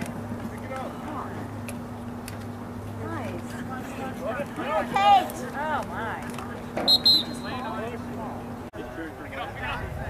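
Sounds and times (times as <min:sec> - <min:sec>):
referee whistle blast: 0:06.8 - 0:07.6.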